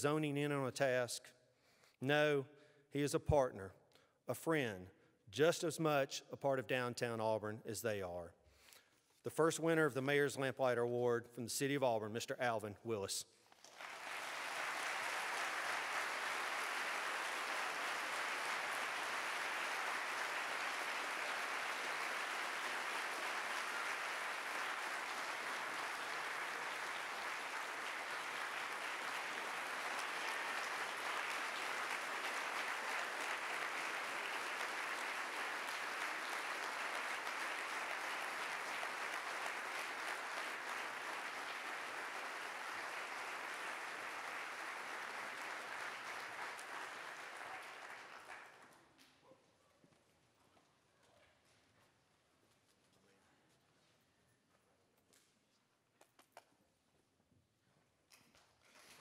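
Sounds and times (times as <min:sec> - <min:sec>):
large audience applauding: 0:13.6 - 0:48.8.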